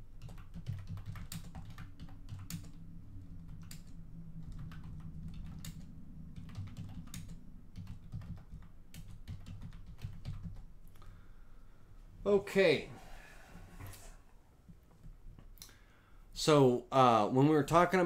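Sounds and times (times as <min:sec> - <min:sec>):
computer keyboard typing: 0:00.0 - 0:10.7
low steady hum: 0:00.0 - 0:18.0.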